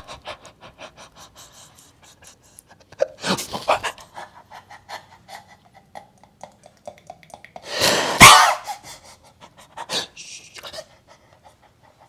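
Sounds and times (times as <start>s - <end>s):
man's whispered evil laugh: 2.0s - 6.7s, 8.0s - 12.0s.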